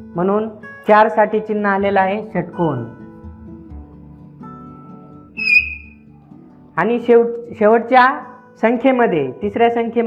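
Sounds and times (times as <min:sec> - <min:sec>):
soft guitar music: 0:02.6 - 0:06.8
chalk squeaking on a blackboard: 0:05.4 - 0:06.0.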